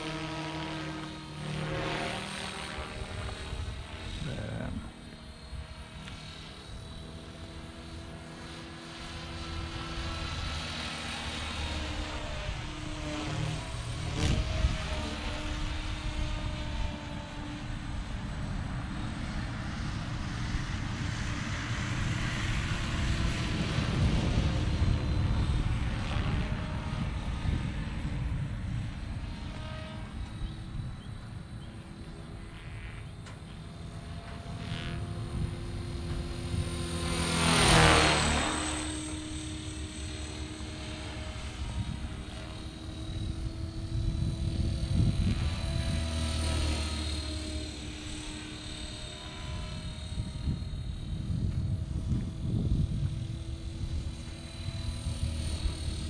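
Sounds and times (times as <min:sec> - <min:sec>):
rc helicopter rotor whine: 0:00.0 - 0:56.0.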